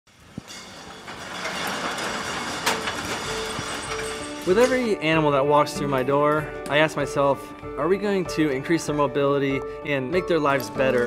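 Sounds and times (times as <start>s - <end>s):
roll-up door rattling rumble: 0.1s - 5.2s.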